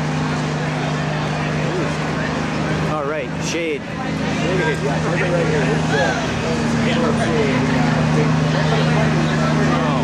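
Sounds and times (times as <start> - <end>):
low machine hum: 0.0 - 10.0
people talking: 0.0 - 10.0.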